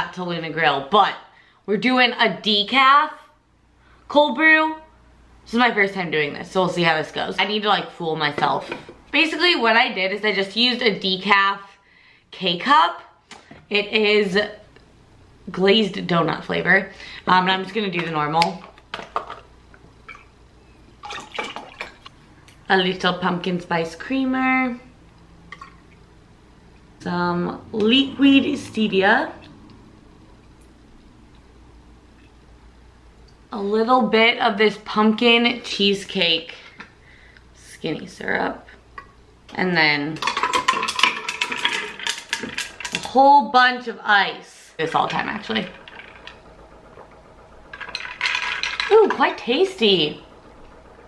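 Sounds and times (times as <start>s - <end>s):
liquid pouring into cup: 21.0s - 22.1s
ice cubes clinking in glass: 40.2s - 43.1s, 47.7s - 49.2s.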